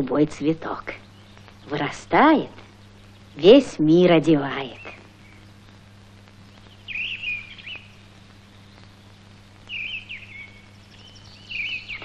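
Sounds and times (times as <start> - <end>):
songbird chirping: 0.0 - 12.0
steady low hum: 0.0 - 12.0.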